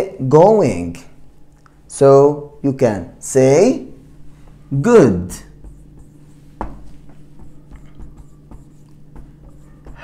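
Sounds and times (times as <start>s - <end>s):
marker writing on whiteboard: 4.3s - 10.0s.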